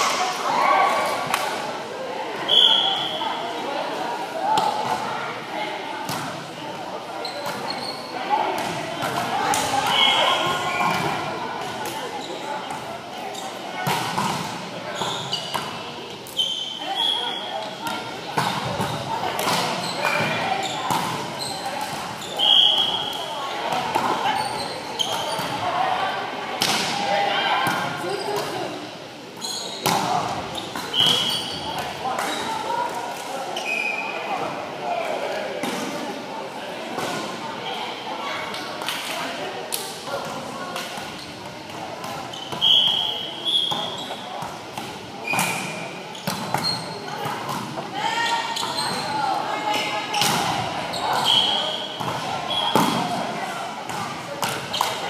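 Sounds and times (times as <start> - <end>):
shoes squeaking on floor: 7.2 - 8.2, 14.9 - 15.6, 19.7 - 23.1, 24.2 - 25.6, 29.4 - 29.8, 30.6 - 32.5, 42.2 - 44.3, 45.2 - 47.3, 48.0 - 53.0
volleyball hits: 50.2 - 53.2.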